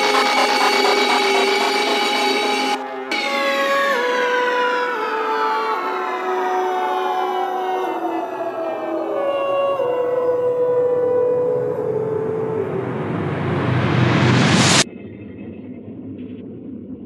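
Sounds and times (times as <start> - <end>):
synth tone sliding down in pitch: 0.0 - 3.4
held synth line: 0.0 - 4.0.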